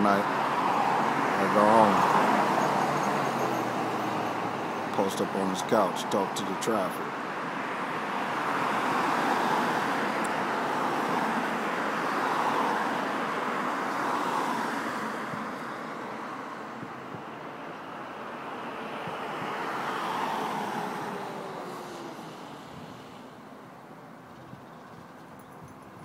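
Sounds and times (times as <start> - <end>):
road traffic passing: 0.0 - 26.0.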